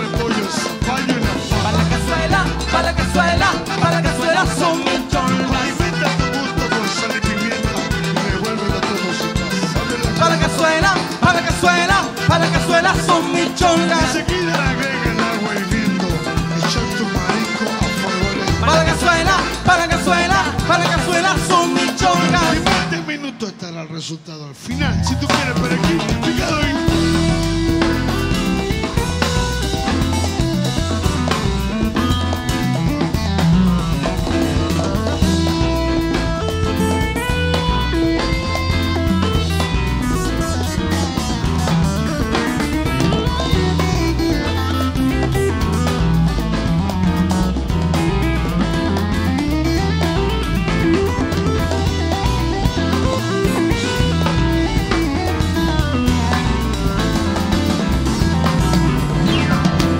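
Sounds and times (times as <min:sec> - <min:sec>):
electric bass: 0:00.0 - 0:23.1, 0:24.7 - 0:59.9
drum kit: 0:00.0 - 0:23.4, 0:24.7 - 0:59.9
keyboard: 0:00.0 - 0:59.9.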